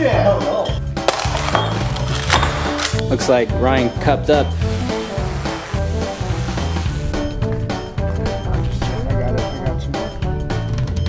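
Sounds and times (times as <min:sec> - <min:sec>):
music with bass beat: 0:00.0 - 0:11.0.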